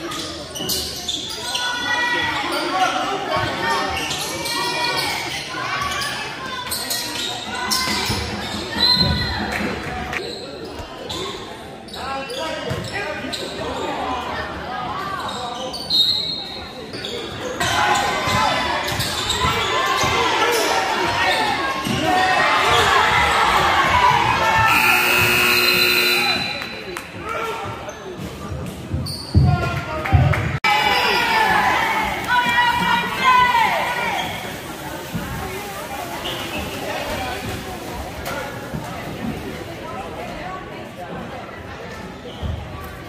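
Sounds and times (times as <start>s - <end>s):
buzzer tone: 24.6s - 26.7s.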